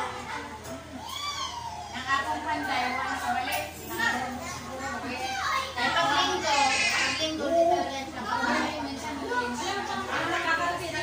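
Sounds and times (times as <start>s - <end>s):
people chattering: 0.0s - 11.0s
children's high voices: 0.2s - 2.1s, 4.4s - 8.8s.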